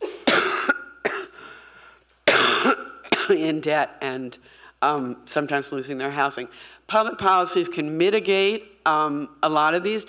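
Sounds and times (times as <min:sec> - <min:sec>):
woman coughing: 0:00.0 - 0:01.4, 0:02.3 - 0:03.5.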